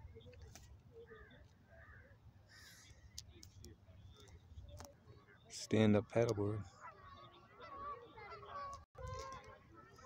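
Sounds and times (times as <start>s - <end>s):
distant bird calls: 0.0s - 10.0s.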